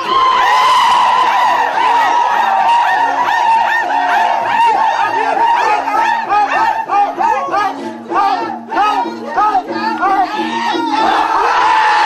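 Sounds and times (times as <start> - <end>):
men singing and calling: 0.0 - 12.0.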